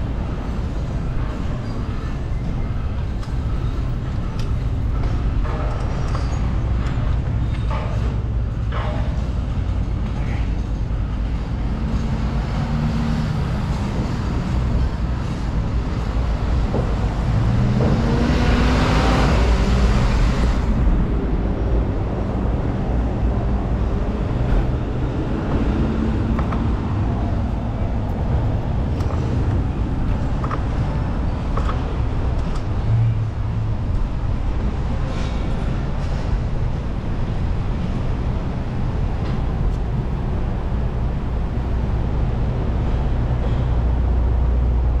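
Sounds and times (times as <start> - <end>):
cars driving past: 10.8 - 45.0.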